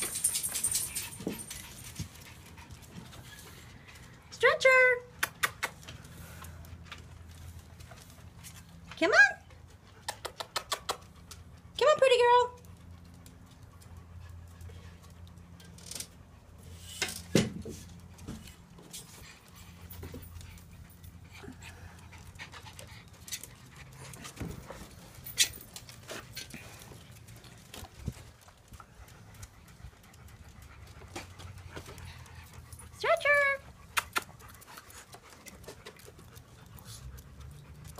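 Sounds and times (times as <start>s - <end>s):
dog panting: 0.0s - 4.3s, 17.9s - 37.9s.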